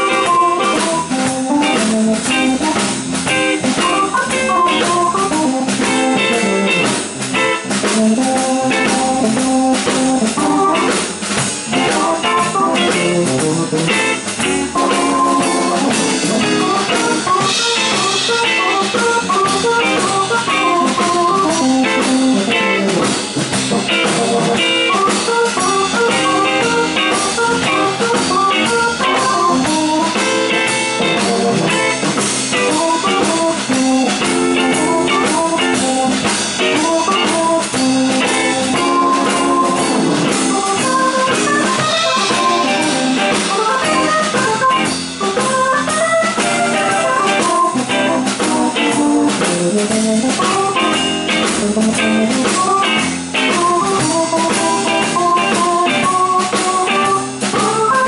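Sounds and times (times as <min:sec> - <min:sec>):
blues band playing: 0:00.0 - 0:58.0
drum kit: 0:00.0 - 0:58.0
electric guitar: 0:00.0 - 0:58.0.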